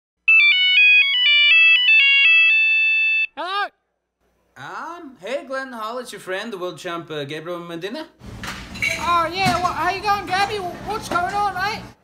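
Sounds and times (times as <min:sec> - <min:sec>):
electronic beeping melody: 0:00.3 - 0:03.3.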